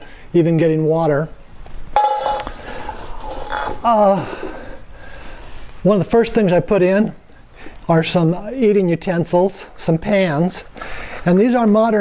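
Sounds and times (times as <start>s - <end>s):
metal clink of tin cookware: 2.0s - 2.6s
ringing tone: 2.0s - 2.7s.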